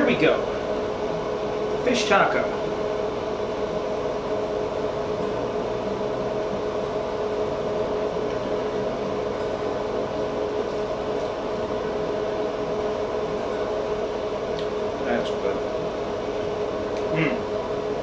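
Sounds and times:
steady machine hum: 0.0s - 18.0s.

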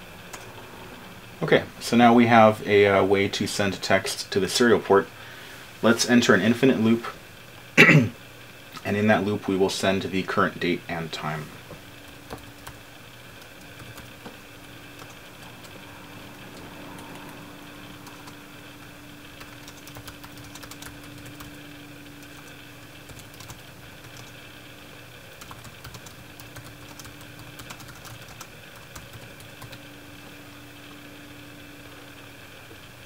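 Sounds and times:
keyboard typing: 12.1s - 12.8s, 13.4s - 14.3s, 14.9s - 15.8s, 18.0s - 18.4s, 19.4s - 21.6s, 22.2s - 24.4s, 25.4s - 29.8s.

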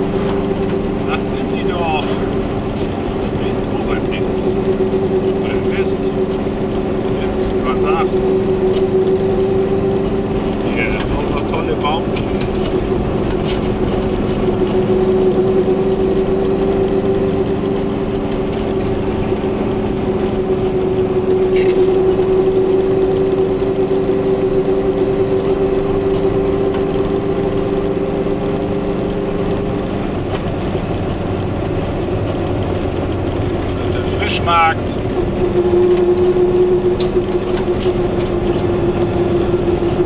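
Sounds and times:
road noise: 0.0s - 40.0s
two-stroke car engine cruising: 0.0s - 40.0s.

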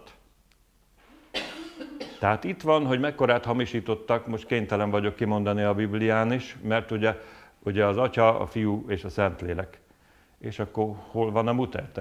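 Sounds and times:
person coughing: 1.1s - 2.3s.

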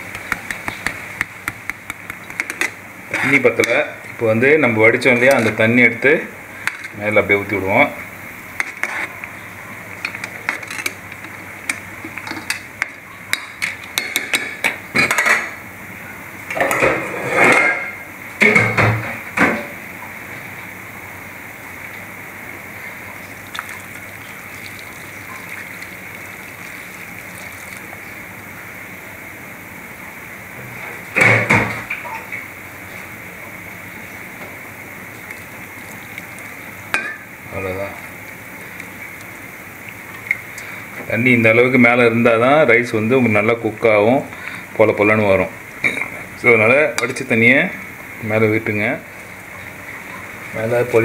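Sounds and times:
steady hiss: 14.0s - 51.0s.

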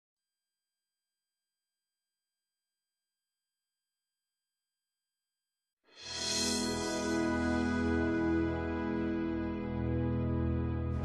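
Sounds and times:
music: 5.9s - 11.0s.

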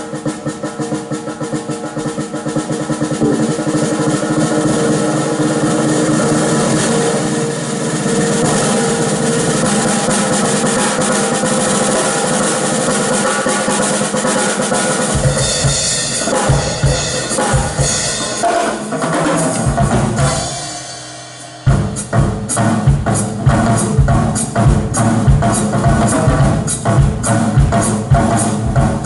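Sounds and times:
cymbals ringing: 0.0s - 29.0s
drum roll: 0.0s - 29.0s
live band playing: 0.0s - 29.0s.

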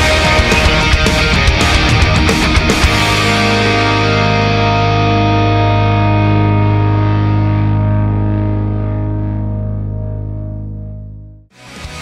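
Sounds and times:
distorted electric guitar chord: 0.0s - 12.0s.

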